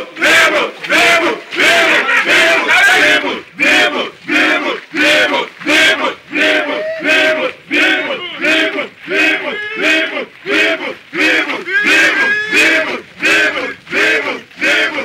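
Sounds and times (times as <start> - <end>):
men shouting a chant: 0.0 - 15.0.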